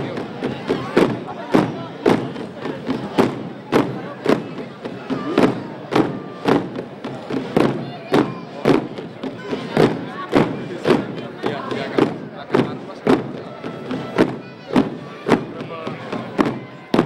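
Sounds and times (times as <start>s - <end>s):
drum beating slow march: 0.0s - 17.0s
murmur of crowd: 0.0s - 17.0s.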